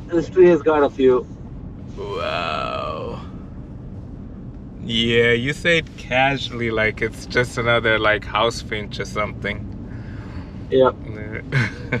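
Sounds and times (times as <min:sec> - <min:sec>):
car cabin road noise: 0:00.0 - 0:12.0
man's wordless vocal exclamation: 0:01.9 - 0:03.3.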